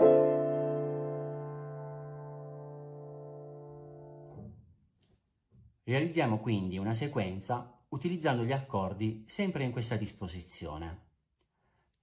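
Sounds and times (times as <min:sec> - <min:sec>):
piano chord: 0:00.0 - 0:04.5.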